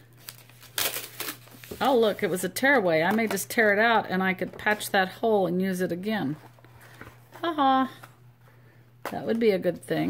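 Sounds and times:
paper crinkling and rustling: 0.1s - 2.2s.

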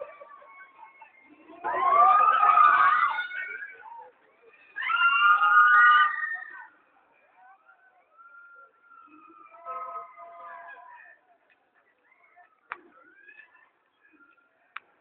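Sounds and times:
riders screaming together: 1.2s - 3.7s, 4.7s - 6.7s.

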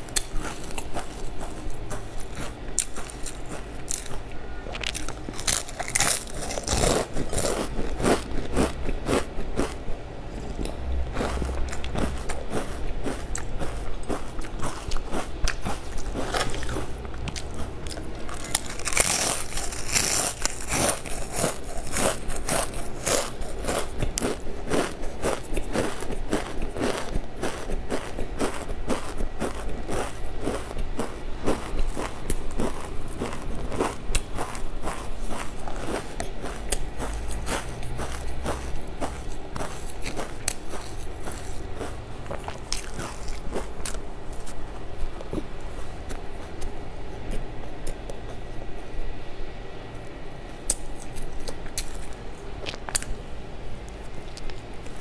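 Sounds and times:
chewing crisp snack food: 0.0s - 48.8s, 50.0s - 53.2s, 53.8s - 55.0s.

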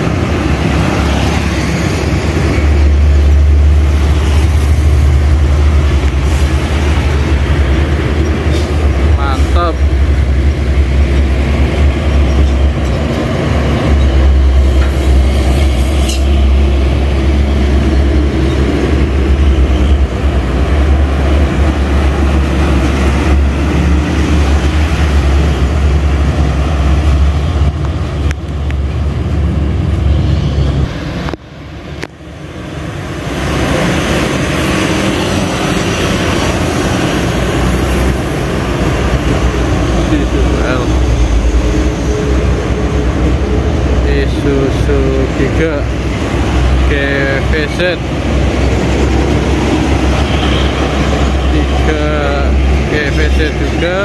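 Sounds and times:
diesel truck engine rumble: 0.0s - 54.0s.

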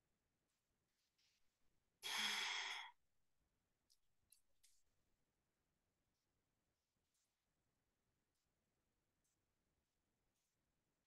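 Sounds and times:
person sighing: 2.0s - 2.9s.

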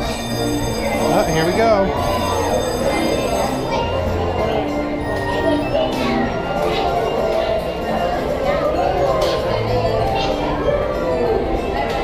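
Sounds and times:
carousel music: 0.0s - 12.0s
people and children chattering: 0.0s - 12.0s.

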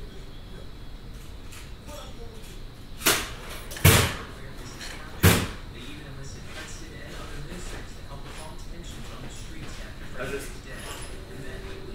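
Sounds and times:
low background hum: 0.0s - 11.9s.

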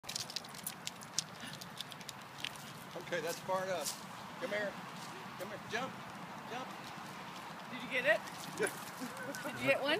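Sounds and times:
dog claws scratching tree trunk: 0.0s - 3.2s.

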